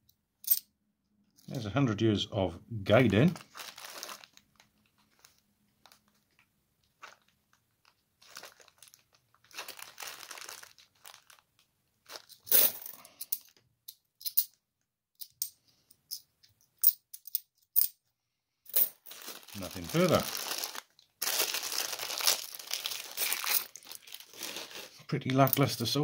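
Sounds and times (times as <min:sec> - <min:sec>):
plastic bag crinkling: 0:02.9 - 0:13.1, 0:19.0 - 0:25.8
coins clicking together: 0:12.4 - 0:14.5, 0:16.8 - 0:17.9.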